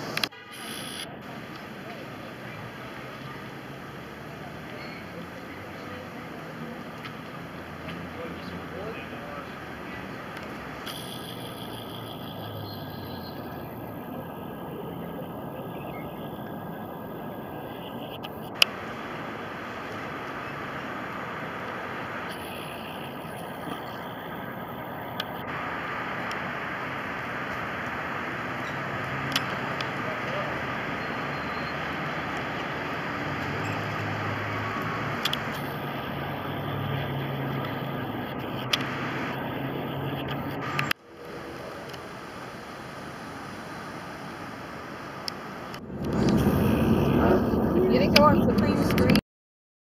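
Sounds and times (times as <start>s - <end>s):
sharp clicks: 10.3s - 13.9s, 17.8s - 18.8s, 28.6s - 30.0s, 34.8s - 41.0s
low rumble: 45.8s - 49.2s.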